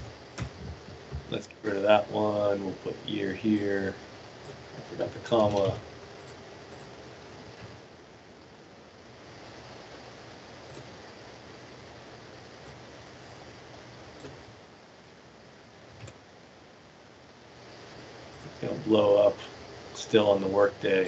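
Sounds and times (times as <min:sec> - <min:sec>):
room tone hiss: 0:00.0 - 0:21.0.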